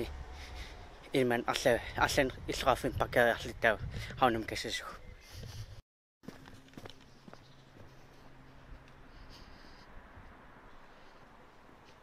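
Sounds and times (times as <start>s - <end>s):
footsteps on cobblestones: 6.2s - 9.0s.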